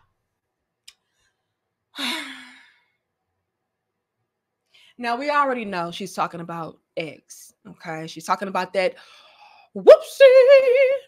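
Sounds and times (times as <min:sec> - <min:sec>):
woman sighing: 0:02.0 - 0:02.9.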